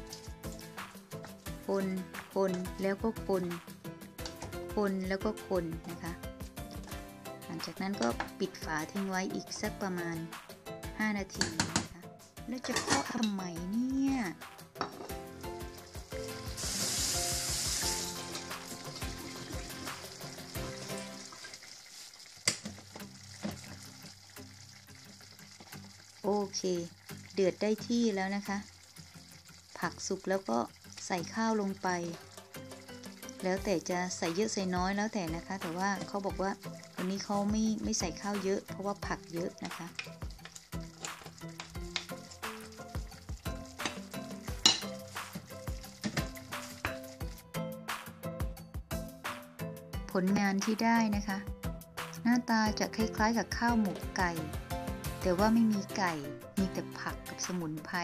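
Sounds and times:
background music: 0.0 - 58.0
spoon scraping and knocking pot: 12.6 - 13.4, 14.8 - 15.2, 43.1 - 47.3
stew bubbling and simmering: 12.6 - 48.0
hiss: 16.5 - 18.1
wooden spoon stirring in pot: 34.9 - 47.4.

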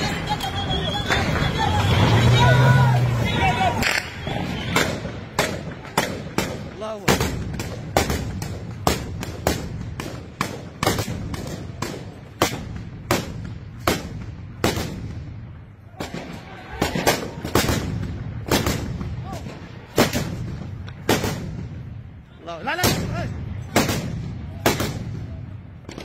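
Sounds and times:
small-arms gunshots echoing: 3.8 - 15.2.

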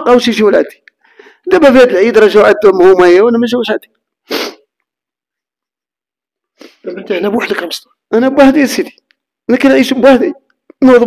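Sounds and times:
man's sharp breath burst: 4.2 - 4.7.

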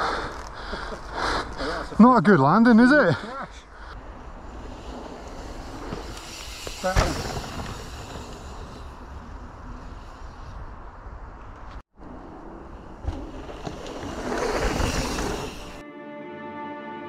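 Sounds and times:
bike tyre noise on dirt: 3.8 - 15.8
bike knocking over ground: 5.8 - 8.4.

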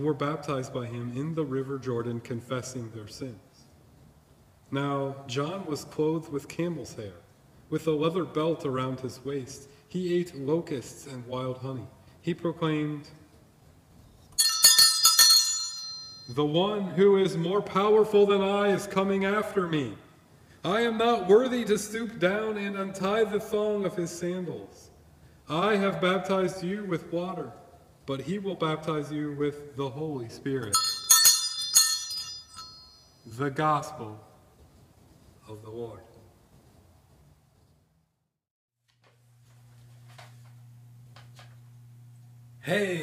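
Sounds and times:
brass handbell jangling: 14.4 - 16.4, 30.7 - 33.3.

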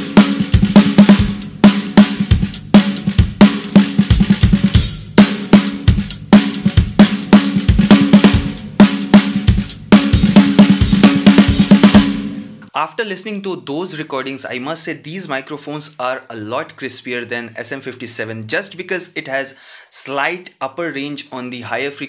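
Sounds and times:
drum kit groove: 0.0 - 12.7.

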